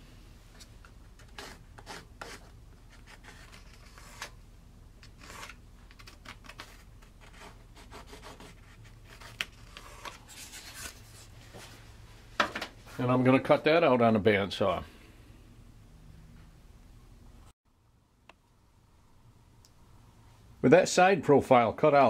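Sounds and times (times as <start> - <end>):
marking tool scratching wood: 1.2 - 2.5, 7.2 - 10.2.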